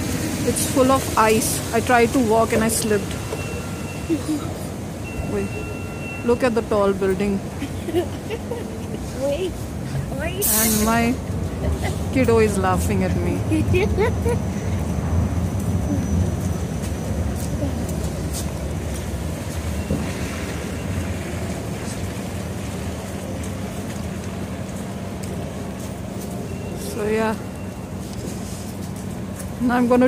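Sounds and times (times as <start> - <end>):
bus driving by: 0.0 - 30.0
traffic rumble: 0.0 - 30.0.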